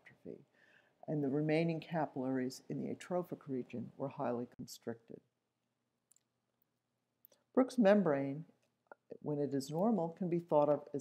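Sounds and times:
person speaking: 0.0s - 5.3s, 7.3s - 11.0s
faint small clicks: 6.1s - 7.5s.

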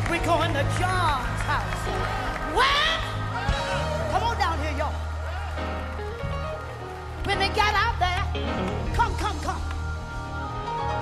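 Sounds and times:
live gospel band: 0.0s - 11.0s.

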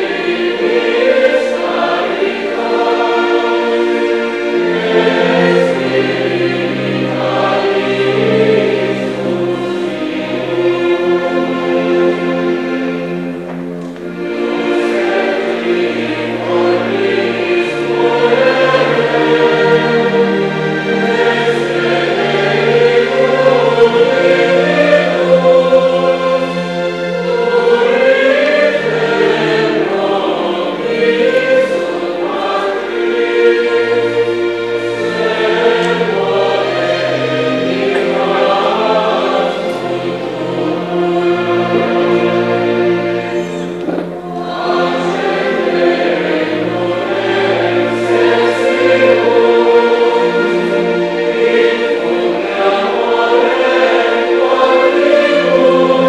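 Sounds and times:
choir singing: 0.0s - 56.0s
instrumental accompaniment: 0.0s - 56.0s.

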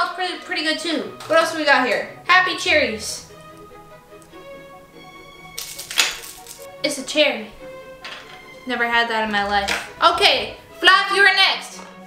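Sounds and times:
background music: 0.0s - 12.0s
plastic package crinkling: 5.5s - 6.7s.

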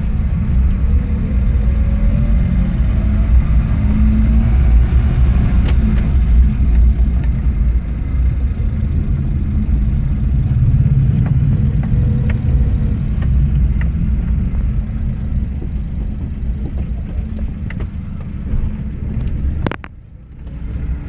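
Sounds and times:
car engine low rumble: 0.0s - 21.0s.

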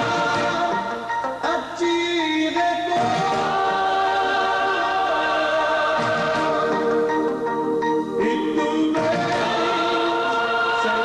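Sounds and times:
choir backing voices: 0.0s - 1.4s, 2.9s - 11.0s
man singing gospel song: 0.0s - 7.3s, 8.2s - 11.0s
instrumental accompaniment: 0.0s - 11.0s.

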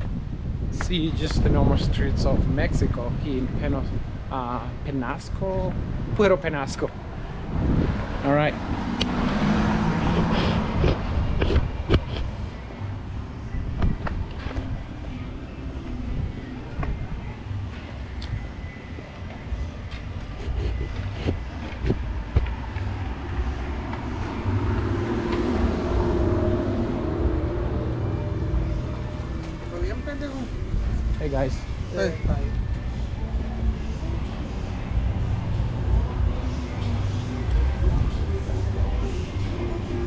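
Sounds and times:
car traffic rumble: 0.0s - 40.0s
faint voices: 9.4s - 40.0s.

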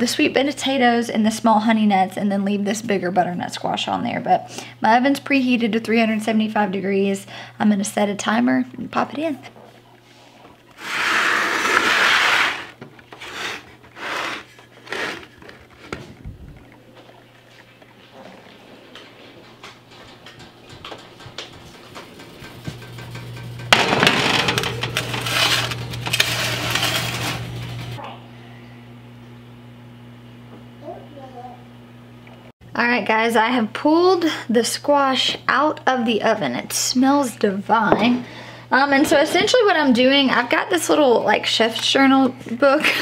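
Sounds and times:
steady low hum: 0.0s - 43.0s
pan scraping and rattling: 10.8s - 16.0s, 21.0s - 28.0s
metal sheet pan knocks and clatters: 20.8s - 27.8s.

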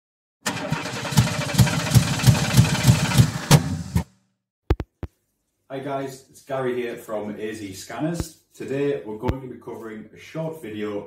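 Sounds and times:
engine throbbing: 0.5s - 4.0s.

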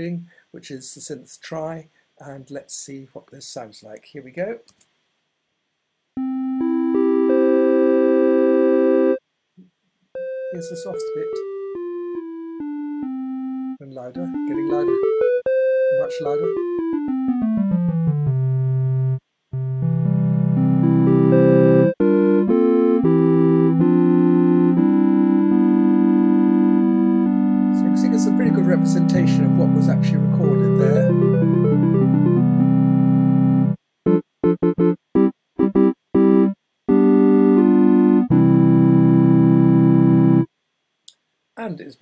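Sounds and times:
triangle-wave synth playing chords: 6.2s - 9.2s, 10.2s - 40.5s.

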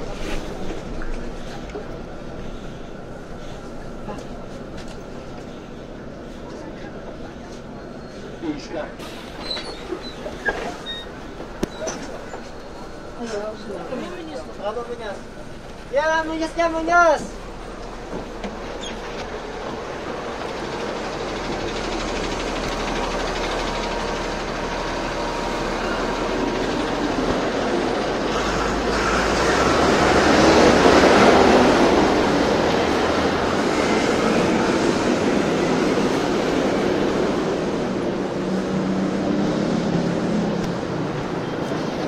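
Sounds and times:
elevated train passing: 0.0s - 42.0s.

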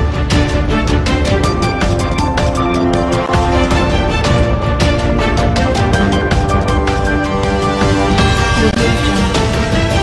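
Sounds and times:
news theme music: 0.0s - 10.0s.

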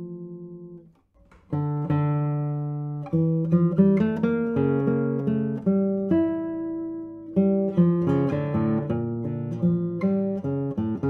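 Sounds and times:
classical guitar fingerstyle chords: 0.0s - 11.0s.

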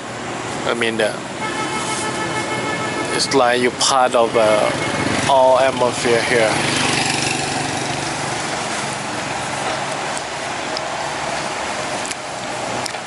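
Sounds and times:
street noise hiss: 0.0s - 13.0s
motorbike passing: 1.2s - 13.0s.

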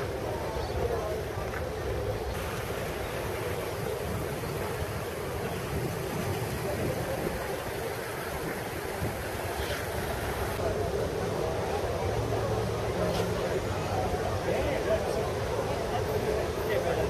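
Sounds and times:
crowd chatter: 0.0s - 17.0s
wind noise on microphone: 2.3s - 10.6s.

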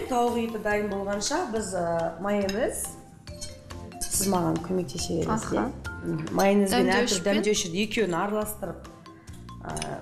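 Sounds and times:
utensil clinking ceramic bowl: 6.2s - 7.4s, 9.3s - 10.0s.

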